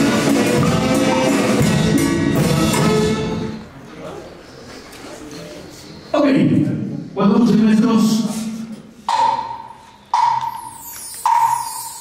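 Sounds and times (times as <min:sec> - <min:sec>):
percussion strikes with ringing tone: 0:00.0 - 0:03.3, 0:09.1 - 0:12.0.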